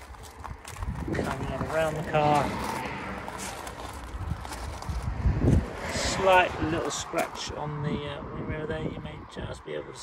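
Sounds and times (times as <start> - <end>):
footsteps crunching on gravel: 0.0 - 7.6.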